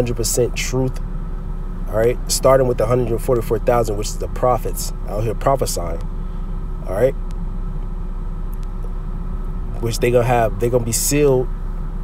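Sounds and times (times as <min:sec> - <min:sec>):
faint hum: 0:00.0 - 0:12.0
steady low rumble: 0:00.0 - 0:12.0.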